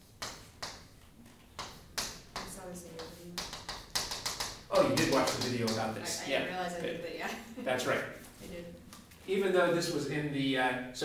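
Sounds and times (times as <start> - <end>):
chalk tapping and scraping on chalkboard: 0.0 - 6.2
person speaking: 4.7 - 10.4.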